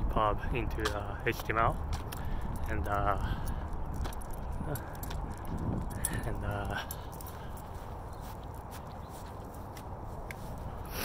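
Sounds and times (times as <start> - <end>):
footsteps with jingling: 0.6 - 11.0.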